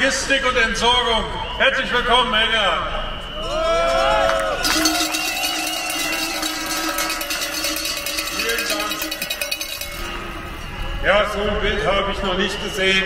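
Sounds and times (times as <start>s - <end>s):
cowbells rung rapidly: 4.6s - 11.2s.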